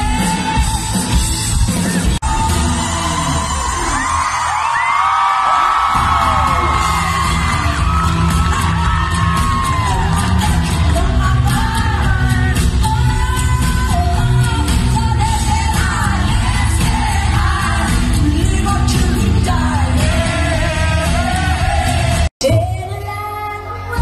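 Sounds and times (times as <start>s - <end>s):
pop-rock band playing: 0.0s - 4.6s, 5.8s - 24.0s
crowd shrieking and whooping: 0.0s - 12.1s
woman singing into microphone: 8.8s - 21.2s, 22.4s - 24.0s.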